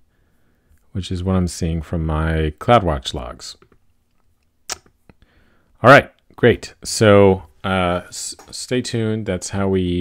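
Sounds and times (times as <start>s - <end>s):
man speaking: 0.9s - 3.7s, 5.8s - 10.0s.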